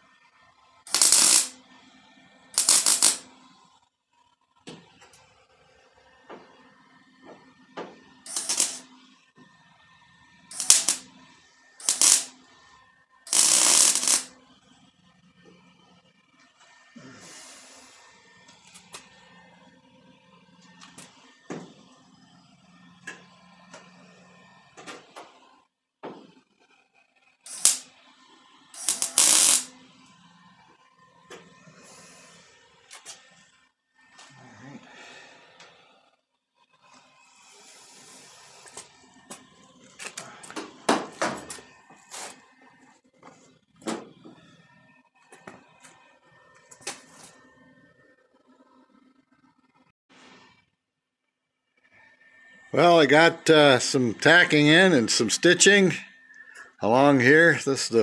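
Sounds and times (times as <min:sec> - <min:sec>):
mig welder welding: 0:00.9 - 0:03.6, 0:06.4 - 0:09.2, 0:10.3 - 0:12.7, 0:13.3 - 0:15.1, 0:17.3 - 0:30.3, 0:31.2 - 0:35.3, 0:36.9 - 0:42.6.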